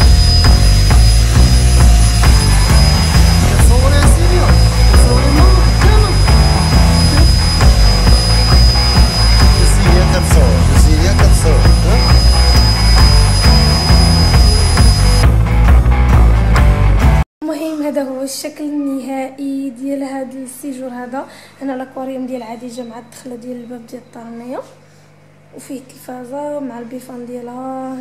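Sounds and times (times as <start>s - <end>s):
vacuum cleaner whining: 0.0s - 15.4s
music with heavy beat: 0.0s - 17.2s.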